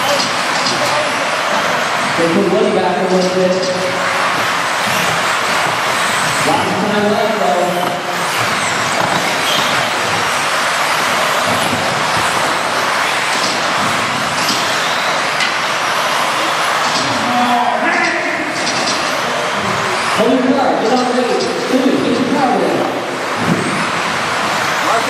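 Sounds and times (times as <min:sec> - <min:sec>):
rc cars racing high rush: 0:00.0 - 0:25.0.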